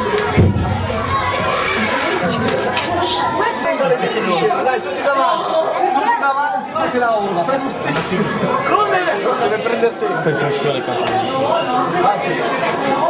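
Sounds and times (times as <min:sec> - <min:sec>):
group of people chattering: 0:00.0 - 0:13.0.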